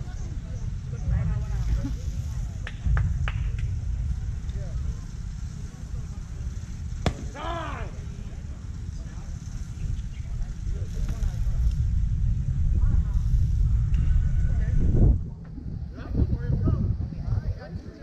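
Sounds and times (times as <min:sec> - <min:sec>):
faint voices: 0:00.0 - 0:18.0
wind buffeting microphone: 0:00.0 - 0:18.0.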